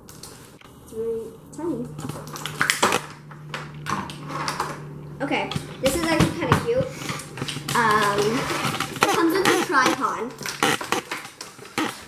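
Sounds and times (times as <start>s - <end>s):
faint steady hum: 0.0s - 12.0s
plastic packaging crinkles and clicks: 1.9s - 4.8s, 5.5s - 12.0s.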